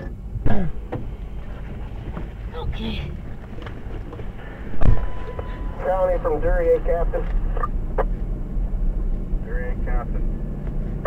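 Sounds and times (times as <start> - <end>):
vehicle driving rumble: 0.0 - 11.0
steady radio beep: 4.5 - 7.6
radio voice: 5.2 - 7.6.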